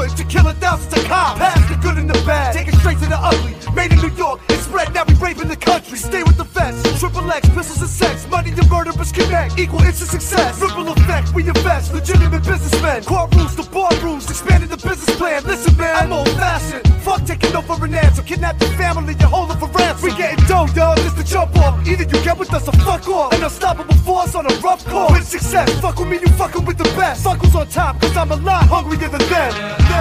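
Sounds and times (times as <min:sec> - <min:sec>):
hip hop beat with heavy bass: 0:00.0 - 0:30.0
person rapping: 0:00.0 - 0:30.0.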